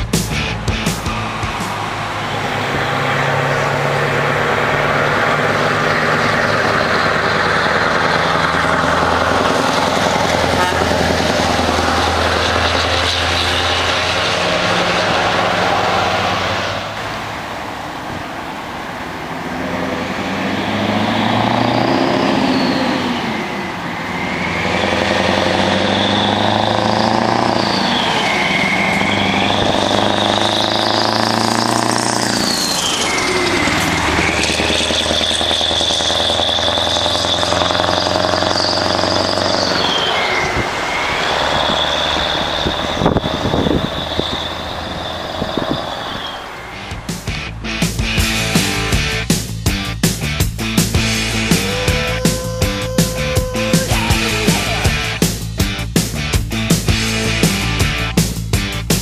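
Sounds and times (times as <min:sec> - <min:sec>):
truck diesel engines passing: 0:00.0 - 0:59.0
whistling tones: 0:22.0 - 0:31.1, 0:32.2 - 0:47.0.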